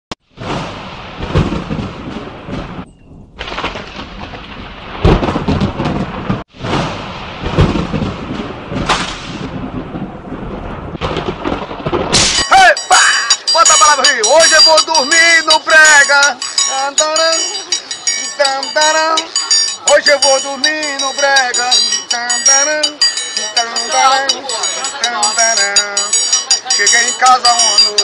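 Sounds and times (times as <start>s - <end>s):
thunder rumbling: 0.2s - 12.5s
rain: 0.3s - 12.6s
triangle ringing: 2.9s - 3.2s, 12.4s - 28.0s
man's voice: 12.4s - 28.0s.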